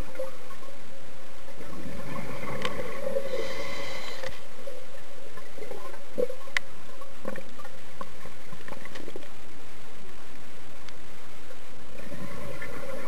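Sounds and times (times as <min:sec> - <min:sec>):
steady underwater hum: 0:00.0 - 0:13.0.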